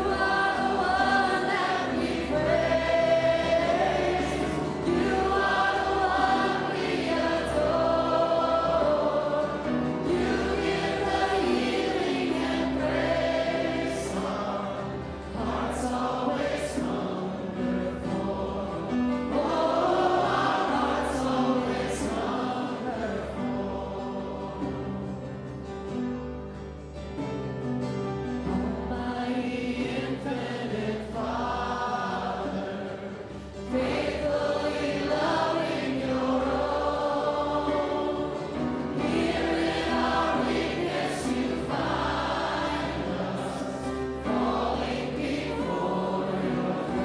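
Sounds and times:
congregation singing a hymn: 0.0s - 47.0s.

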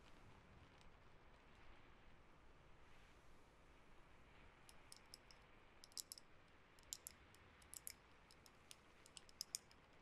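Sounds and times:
fingernails tapping on bamboo: 6.8s - 9.7s.

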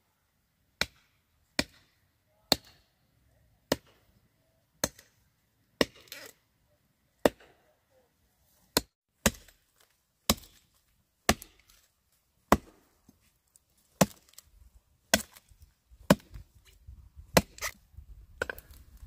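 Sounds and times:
blade chopping wood: 0.8s - 1.9s, 3.7s - 4.0s, 5.8s - 6.4s, 7.2s - 7.6s, 8.8s - 9.6s, 10.3s - 11.8s, 12.5s - 12.8s, 14.0s - 14.5s, 15.1s - 16.7s, 17.3s - 17.8s, 18.4s - 18.8s.

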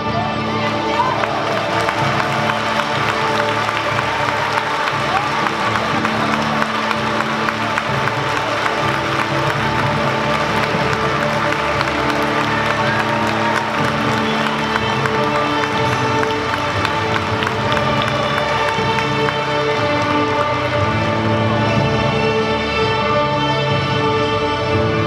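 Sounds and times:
string orchestra sustained notes: 0.0s - 25.0s.

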